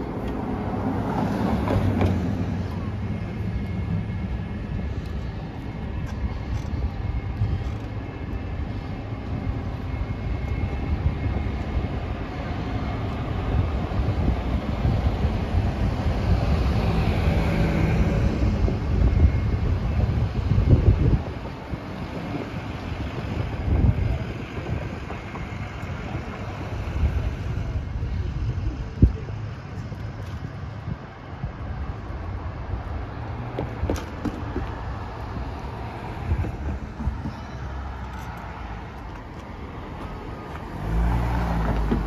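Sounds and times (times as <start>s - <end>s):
city street traffic: 0.0s - 42.0s
wind rumble on microphone: 0.0s - 42.0s.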